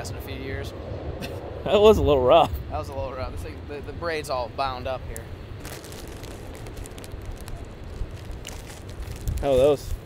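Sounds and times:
wind buffeting microphone: 0:00.0 - 0:10.0
crackling handling noise: 0:05.1 - 0:10.0.

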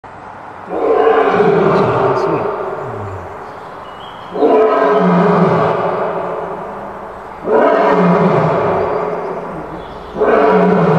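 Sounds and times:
lion roaring: 0:00.7 - 0:03.6, 0:04.3 - 0:10.9.

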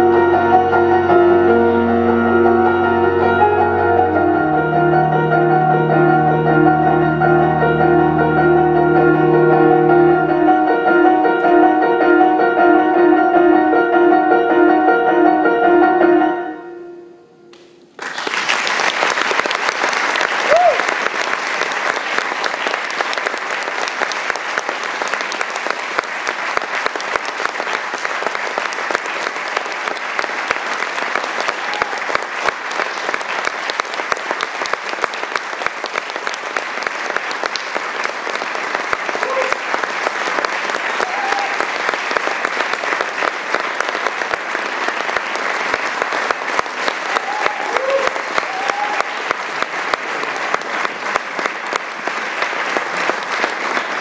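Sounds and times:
audience applauding: 0:17.5 - 0:54.0
brief cheers: 0:20.4 - 0:20.9, 0:39.2 - 0:39.6, 0:41.0 - 0:41.7, 0:47.1 - 0:49.2.

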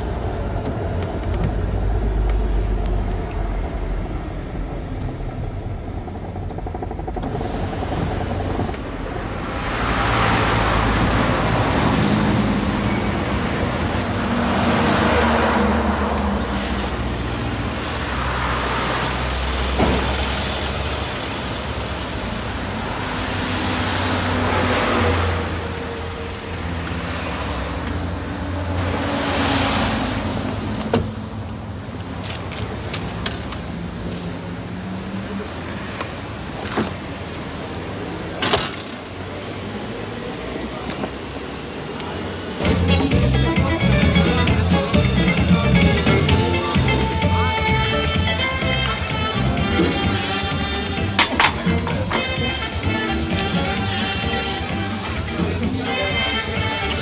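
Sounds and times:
cars passing: 0:00.0 - 0:57.0
low engine rumble: 0:00.0 - 0:57.0.

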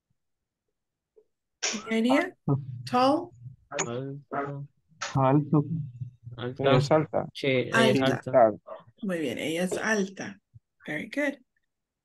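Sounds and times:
person speaking: 0:01.6 - 0:10.0.

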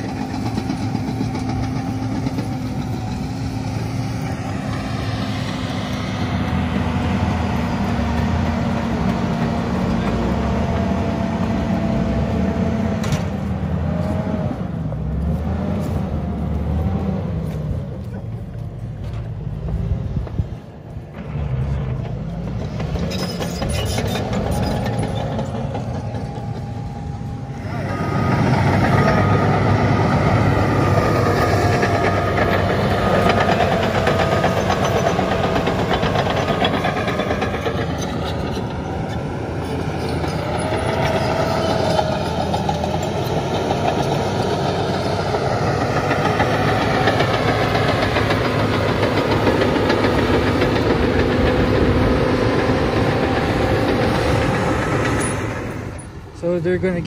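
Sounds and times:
steel tracks clanking: 0:00.0 - 0:11.8, 0:18.0 - 0:57.0
bulldozer diesel engine: 0:00.0 - 0:57.0
whining tone: 0:21.2 - 0:56.5.

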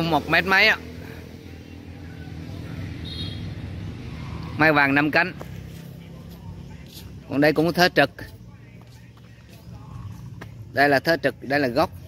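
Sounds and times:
low engine hum: 0:00.0 - 0:12.0
outdoor background noise: 0:00.0 - 0:12.0.

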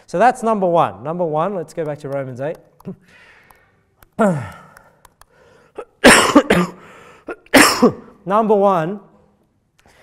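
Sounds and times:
man coughing: 0:05.8 - 0:08.2.

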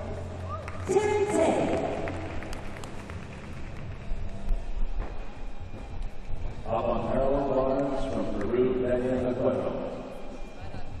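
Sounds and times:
indistinct crowd noise: 0:00.0 - 0:11.0
low hum: 0:00.0 - 0:11.0.

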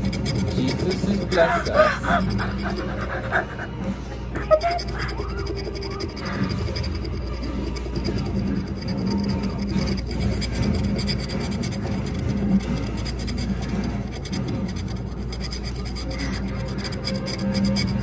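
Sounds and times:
scratch card being scraped: 0:00.0 - 0:18.0.

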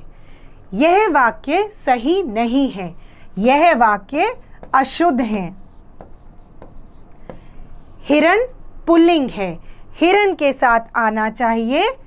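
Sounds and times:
marker pen scratching on board: 0:03.6 - 0:07.6.

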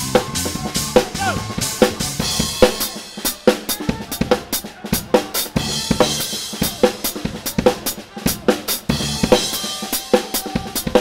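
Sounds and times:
band playing upbeat groove: 0:00.0 - 0:11.0.

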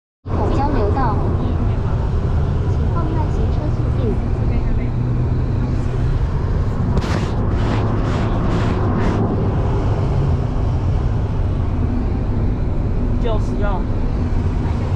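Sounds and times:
car interior road rumble: 0:00.3 - 0:14.9
short bursts of noise: 0:06.9 - 0:09.4.

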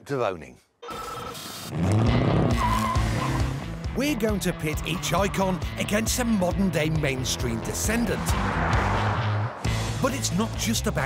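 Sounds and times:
car engine revving hard: 0:01.7 - 0:03.8, 0:07.2 - 0:09.9
tyre squeal: 0:02.5 - 0:03.6.

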